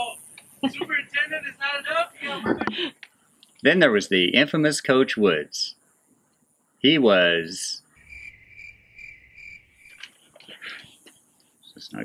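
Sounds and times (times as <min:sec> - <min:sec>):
cricket chirping: 0:03.5 - 0:12.0.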